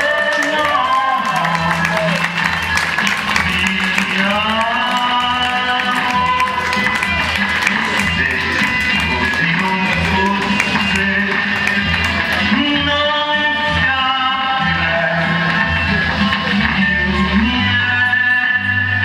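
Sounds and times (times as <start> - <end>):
distorted electric guitar: 0.0 - 19.0.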